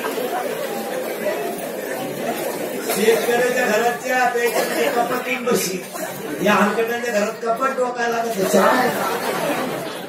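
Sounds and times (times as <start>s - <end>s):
man talking into a microphone: 2.8s - 9.2s.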